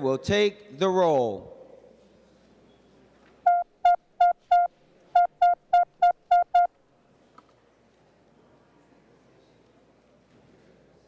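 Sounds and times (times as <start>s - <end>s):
short electronic beeps: 3.5s - 6.7s.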